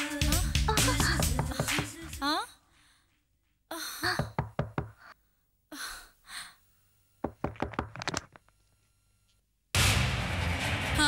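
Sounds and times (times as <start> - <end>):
sharp knocks: 7.2 - 8.3.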